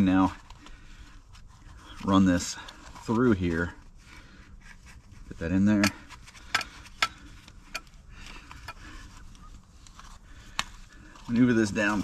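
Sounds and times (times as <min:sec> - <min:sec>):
gloved hands rubbing: 0:00.0 - 0:12.0.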